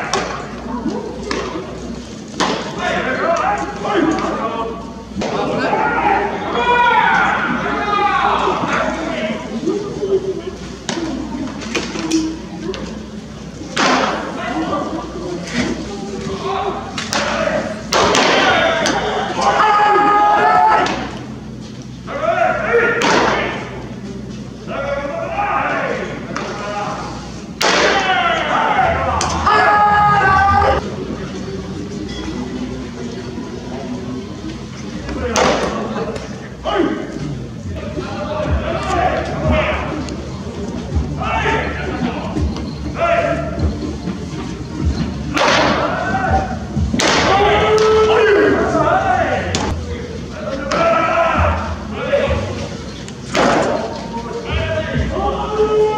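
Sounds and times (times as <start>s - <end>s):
voices calling out: 0.0s - 55.9s
baseballs smacking into mitts: 47.0s - 47.9s.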